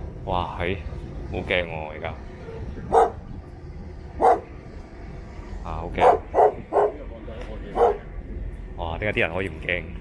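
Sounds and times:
dog barking: 2.9 - 3.2, 4.2 - 4.5, 6.0 - 7.0, 7.8 - 8.0.

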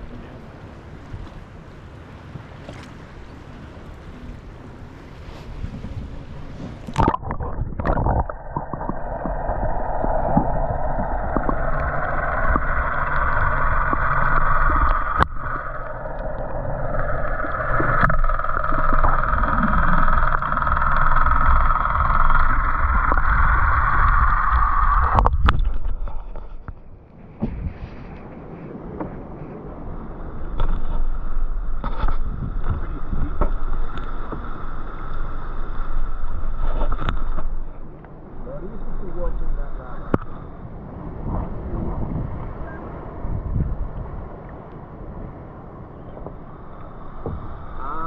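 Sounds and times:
light wind: 0.0 - 48.0
muffled underwater rumble: 0.0 - 48.0
water splash: 6.4 - 26.1.

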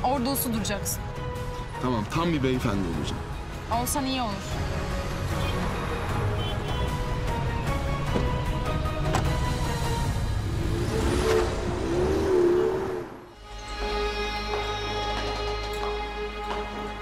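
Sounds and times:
background music: 0.0 - 17.0
car engine pulling away: 8.0 - 13.3.

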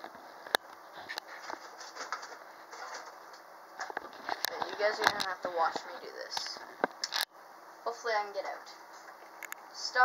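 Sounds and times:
handling noise and rustling: 0.0 - 7.2.

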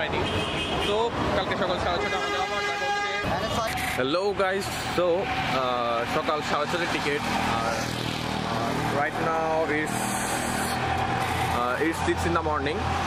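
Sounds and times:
road traffic hum: 0.0 - 13.0
man talking: 8.5 - 10.0, 11.6 - 12.8.

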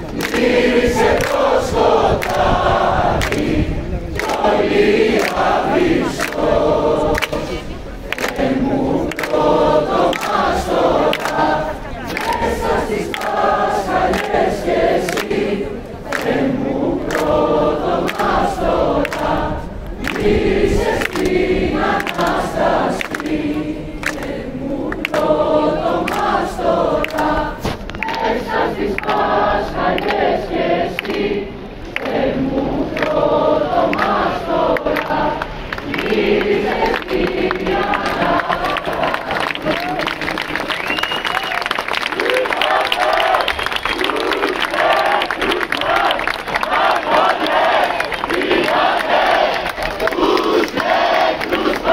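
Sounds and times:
crowd singing in unison: 0.0 - 51.9.

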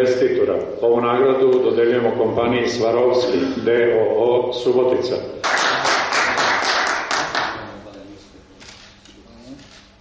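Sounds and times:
audience applauding: 5.4 - 7.5.

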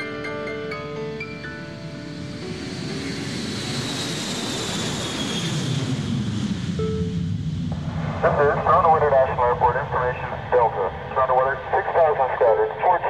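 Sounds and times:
electronic keyboard notes: 0.0 - 3.7, 6.8 - 7.3
jet rushing with falling whine: 1.1 - 13.0.

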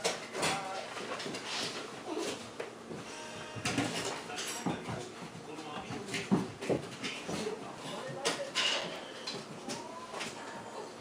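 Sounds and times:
dog whining: 2.0 - 2.4.

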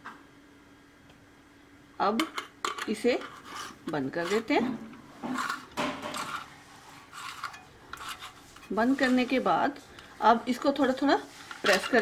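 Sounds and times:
metal rubbing and clinking: 5.2 - 9.4, 11.3 - 12.0.

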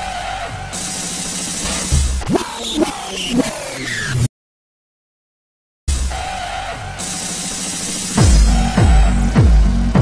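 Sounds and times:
electronic dance music: 0.0 - 4.3, 5.9 - 10.0.

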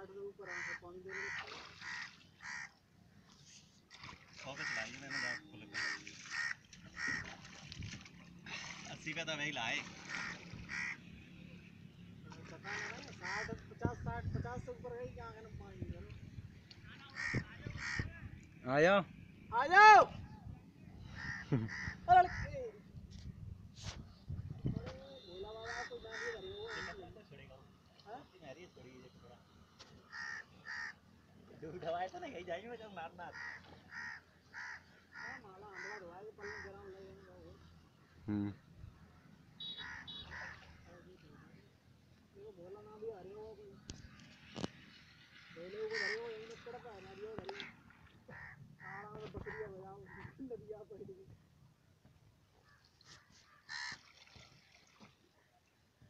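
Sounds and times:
crow cawing: 0.4 - 2.8, 4.6 - 7.5, 10.0 - 11.0, 17.1 - 18.1, 21.1 - 22.5, 25.7 - 26.9, 30.1 - 31.0, 33.3 - 36.8, 39.6 - 40.8, 45.8 - 46.4, 48.3 - 50.3, 52.6 - 54.0
harsh bird-like call: 39.6 - 40.6.

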